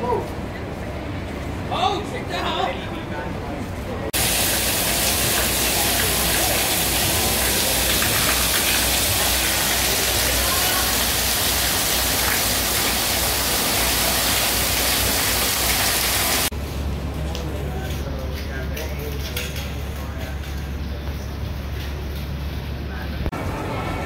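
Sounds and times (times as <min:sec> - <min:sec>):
heavy water pouring and spraying: 0:04.2 - 0:16.5.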